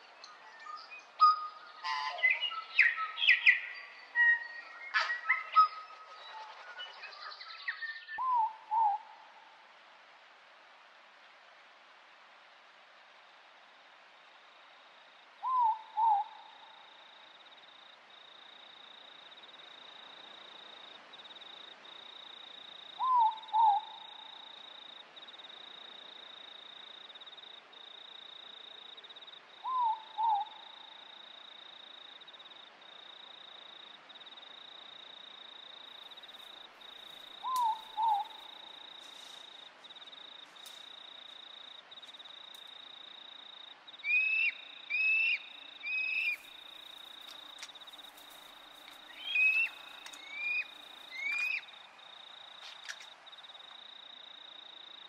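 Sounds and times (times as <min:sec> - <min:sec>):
faint night forest hiss: 0:00.0 - 0:55.0
high insect trill: 0:44.6 - 0:55.0.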